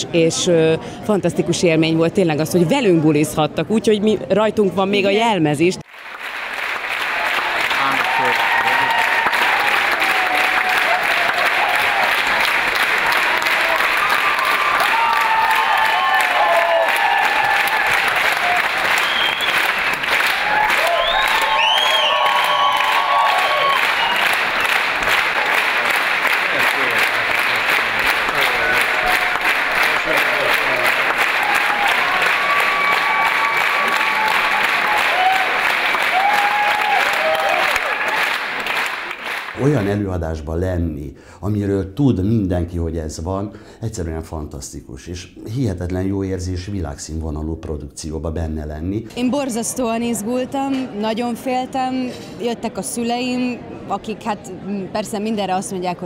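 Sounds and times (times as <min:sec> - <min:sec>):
audience applauding: 0:05.8 - 0:40.0
voices calling out and cheering: 0:07.2 - 0:19.4.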